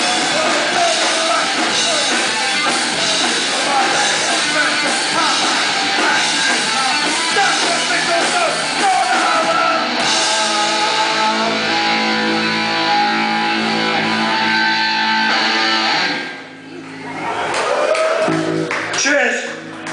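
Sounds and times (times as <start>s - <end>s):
live punk rock band: 0.0s - 16.6s.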